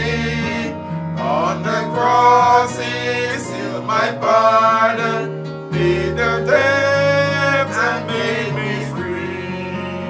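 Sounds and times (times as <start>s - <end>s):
acoustic guitar: 0.0s - 10.0s
people singing a hymn: 0.0s - 10.0s.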